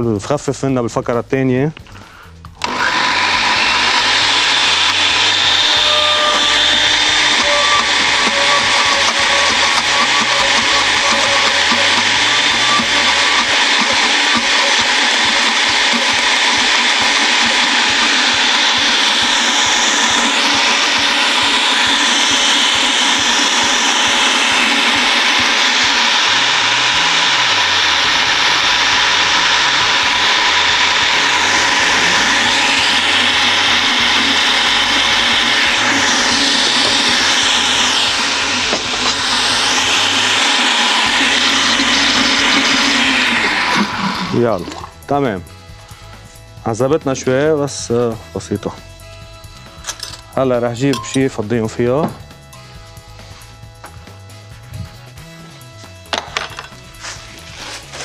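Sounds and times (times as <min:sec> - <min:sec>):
blender whirring: 0:02.5 - 0:47.6, 0:48.4 - 0:58.0.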